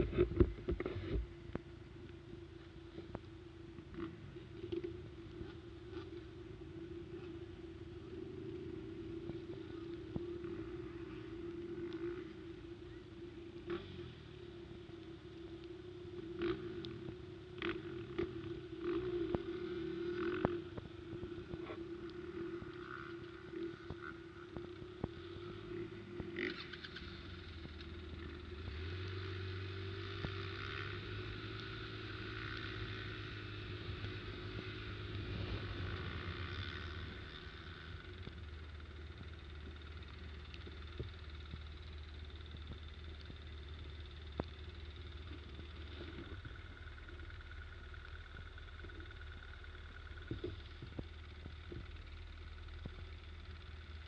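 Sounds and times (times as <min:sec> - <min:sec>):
quad bike engine running: 0:00.0 - 0:54.0.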